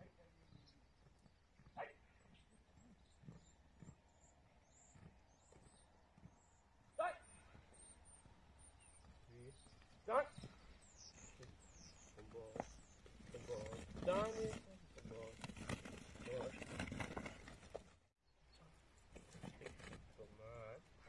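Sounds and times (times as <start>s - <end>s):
faint high bird chirps: 0.0s - 14.6s
man shouting commands: 1.8s - 2.0s, 7.0s - 7.3s, 10.0s - 10.4s.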